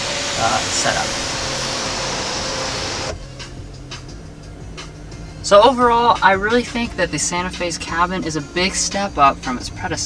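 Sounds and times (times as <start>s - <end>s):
sunshade motor whine: 0.0s - 3.4s.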